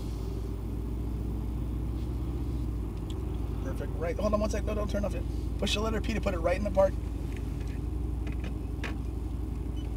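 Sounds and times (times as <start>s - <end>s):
car engine idling: 0.0s - 9.9s.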